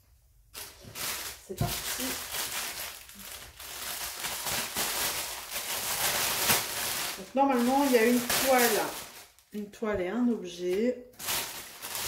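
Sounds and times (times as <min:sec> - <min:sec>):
plastic bag crinkling: 0:00.5 - 0:09.8, 0:10.5 - 0:12.0.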